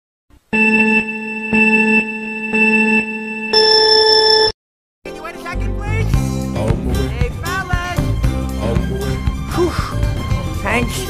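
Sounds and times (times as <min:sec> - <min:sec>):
countdown beeps: 0:00.6 - 0:04.5
music: 0:05.0 - 0:11.0.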